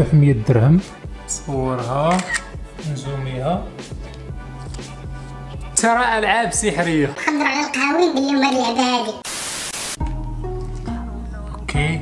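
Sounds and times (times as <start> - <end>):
man's voice: 5.6 - 7.2, 11.2 - 12.0
tv static burst: 9.2 - 10.0.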